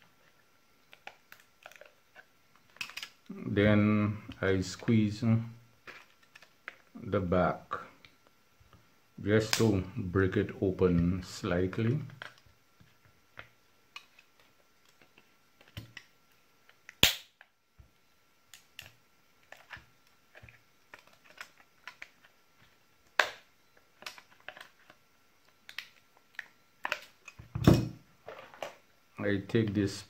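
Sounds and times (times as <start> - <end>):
loud sharp plastic cracks: 16.9 - 17.4, 23.2 - 24.2.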